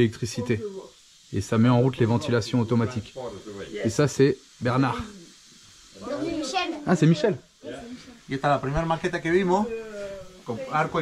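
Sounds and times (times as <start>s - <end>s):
man talking: 0.0s - 5.1s, 8.3s - 11.0s
faint room hiss: 0.0s - 11.0s.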